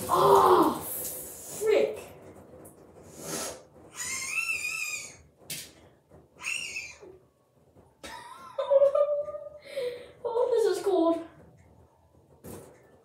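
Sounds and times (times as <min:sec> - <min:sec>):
boy squealing: 0:03.9 - 0:05.3, 0:06.4 - 0:07.2.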